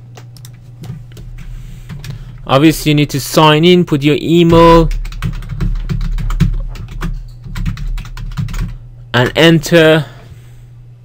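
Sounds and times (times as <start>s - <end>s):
typing on computer keyboard: 4.8s - 8.8s.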